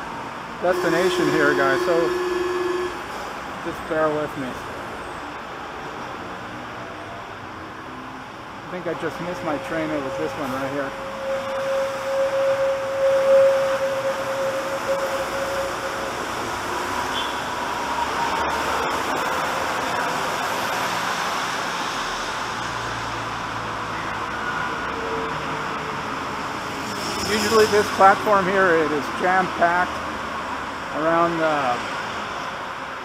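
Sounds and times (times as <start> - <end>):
train whine: 0.0 - 3.5, 8.6 - 20.9
train rushing running noise: 8.4 - 30.0.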